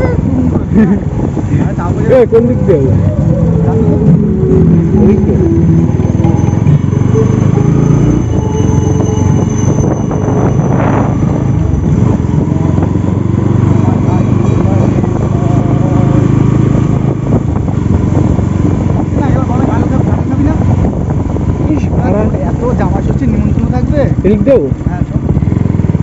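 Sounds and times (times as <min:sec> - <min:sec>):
motorcycle engine running: 0:00.0 - 0:26.0
wind on microphone: 0:00.0 - 0:26.0
person speaking: 0:01.6 - 0:05.9.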